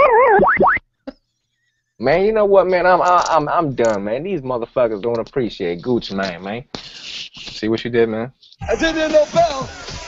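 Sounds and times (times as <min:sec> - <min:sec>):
cartoon boing sound effect: 0:00.0 - 0:00.8.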